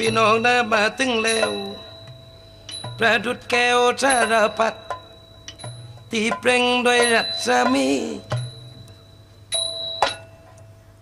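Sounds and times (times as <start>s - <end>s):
metal percussion ringing: 0.0s - 11.0s.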